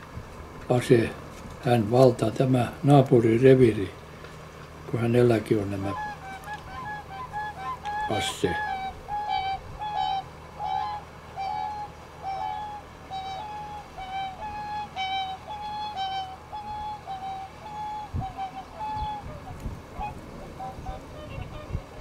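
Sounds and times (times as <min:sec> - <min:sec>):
swans trumpeting calls: 0:05.2 - 0:22.0.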